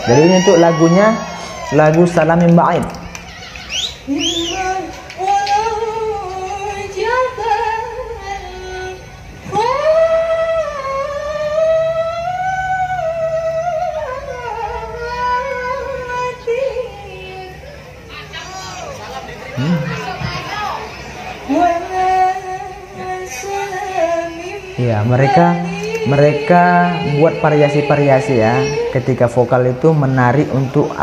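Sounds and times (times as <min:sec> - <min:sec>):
woman singing unaccompanied: 0:04.0 - 0:18.3, 0:21.4 - 0:29.3.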